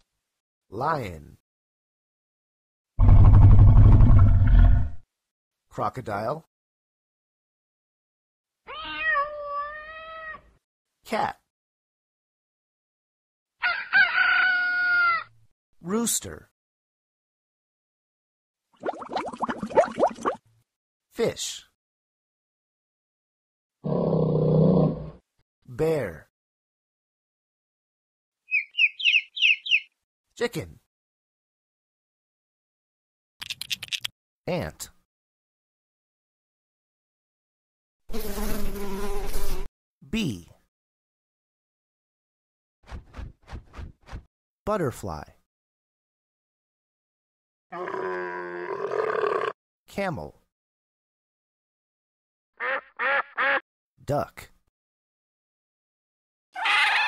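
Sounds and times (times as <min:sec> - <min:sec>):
bear roar: 0:03.0 - 0:05.0, 0:23.8 - 0:25.2, 0:47.7 - 0:49.6
cat meowing: 0:08.7 - 0:10.5, 0:56.6 - 0:57.0
bee buzzing: 0:38.1 - 0:39.7.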